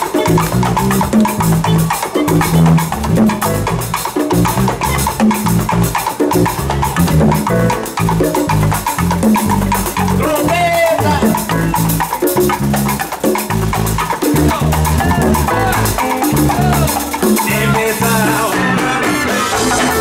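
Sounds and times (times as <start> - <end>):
repeating low notes: 0.0 - 17.8
bongos struck by hand: 0.0 - 20.0
drum kit: 0.0 - 20.0
percussion band playing: 0.0 - 20.0.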